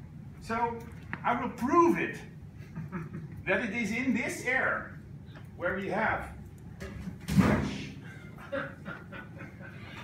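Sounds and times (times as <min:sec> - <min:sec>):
people chuckling: 0:02.6 - 0:03.4, 0:08.0 - 0:10.0.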